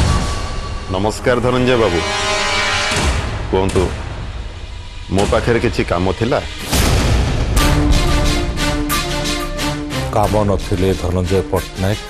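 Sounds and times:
background music: 0.0 - 12.0
man talking: 10.1 - 12.0.

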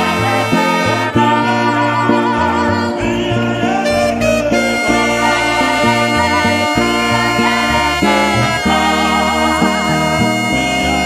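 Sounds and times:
bass line: 0.0 - 11.0
instrumental gospel music: 0.0 - 11.0
lead melody with vibrato: 0.0 - 11.0.

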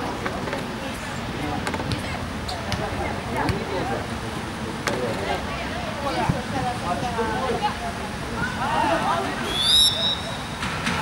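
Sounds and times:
low noisy rumble: 0.0 - 11.0.

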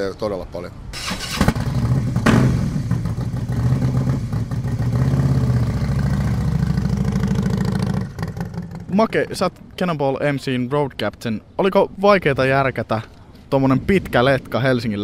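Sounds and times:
motorcycle engine revving: 1.0 - 8.9.

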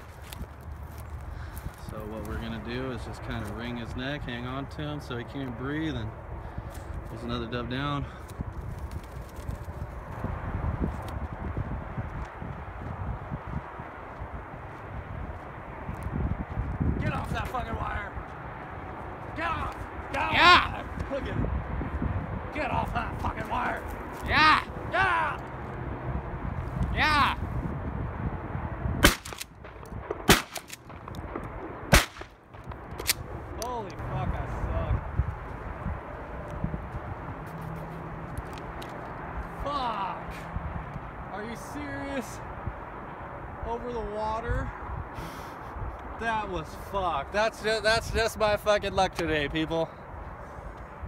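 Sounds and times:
wind buffeting microphone: 0.0 - 51.0
shotgun shots: 29.0 - 33.2.

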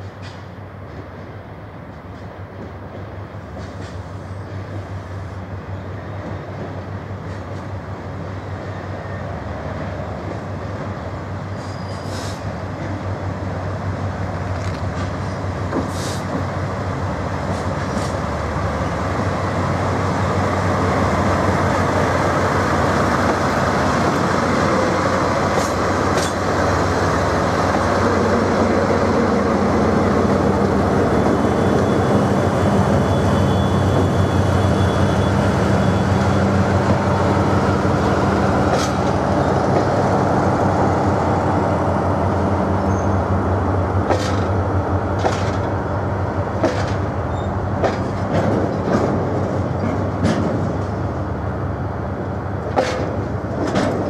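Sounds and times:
diesel locomotive engine droning: 0.0 - 54.0
rumble of tank cars: 0.0 - 54.0.

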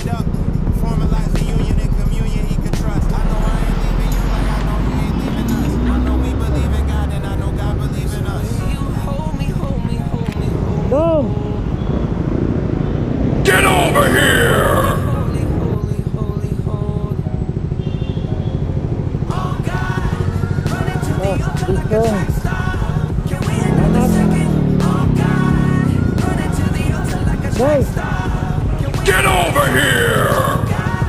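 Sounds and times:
pop music: 0.0 - 11.9, 13.4 - 17.5, 19.1 - 31.0
low rumble of street noise: 0.0 - 31.0
motorcycle engine revving: 0.0 - 31.0
person's rising and falling vocal sound: 13.5 - 15.8.

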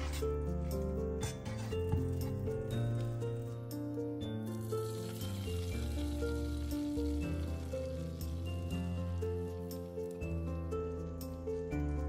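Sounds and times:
egg mixture sizzling in butter: 4.5 - 9.8.

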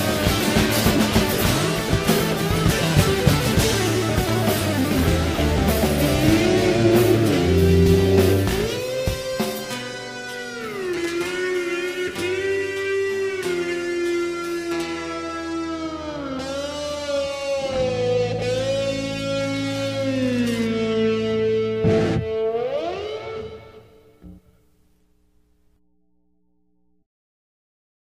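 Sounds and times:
heavy rock band playing: 0.0 - 23.7
electric guitar sustained bending notes: 0.0 - 24.4
held bass note: 1.5 - 9.1.

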